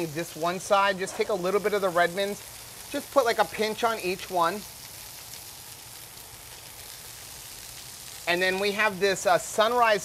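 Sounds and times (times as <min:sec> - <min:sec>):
bacon and burgers sizzling on griddle: 0:00.0 - 0:10.0.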